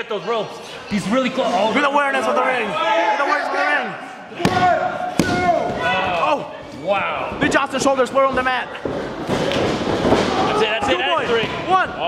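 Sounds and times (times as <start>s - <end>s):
people shouting: 2.2s - 7.2s.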